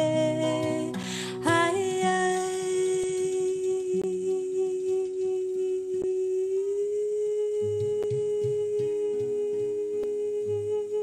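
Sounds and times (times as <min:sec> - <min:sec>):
woman singing long note: 0:01.5 - 0:11.0.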